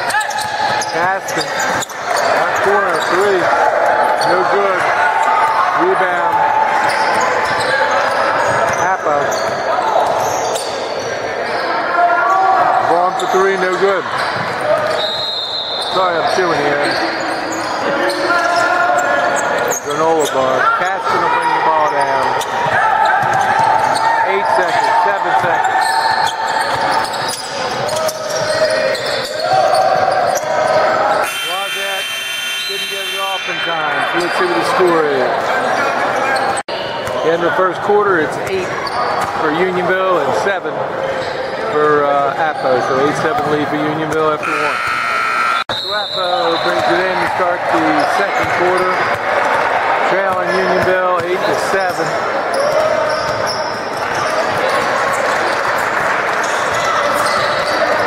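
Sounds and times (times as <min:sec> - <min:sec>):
voices calling out: 0:00.0 - 0:36.7, 0:41.2 - 0:58.0
buzzy horn: 0:44.4 - 0:45.6.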